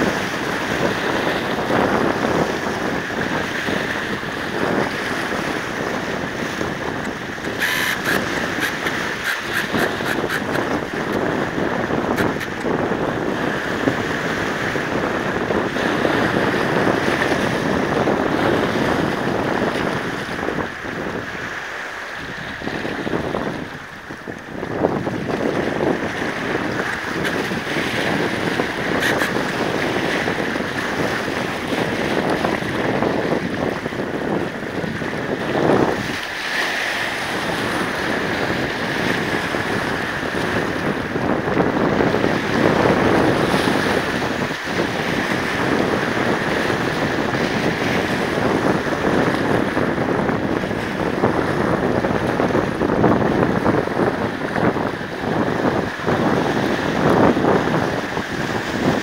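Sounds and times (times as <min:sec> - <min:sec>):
waves splashing against boulders: 0:00.0 - 0:59.0
wind buffeting microphone: 0:00.0 - 0:59.0.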